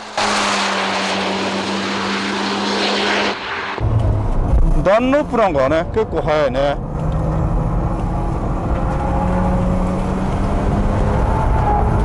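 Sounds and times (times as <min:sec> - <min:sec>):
exhaust and wind noise: 0:00.0 - 0:12.0.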